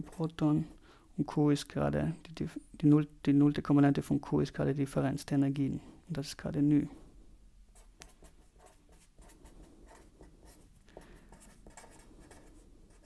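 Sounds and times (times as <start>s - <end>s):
pen scratching on paper: 7.8s - 13.0s.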